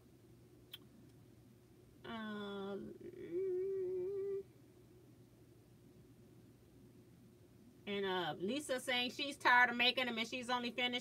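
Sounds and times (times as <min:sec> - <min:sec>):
woman humming: 0:02.1 - 0:04.5.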